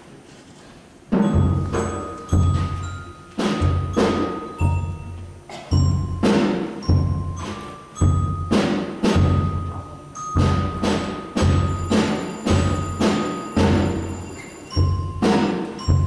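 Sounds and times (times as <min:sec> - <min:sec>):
drum strokes: 0:01.1 - 0:16.0
thin high ringing tones: 0:01.2 - 0:16.0.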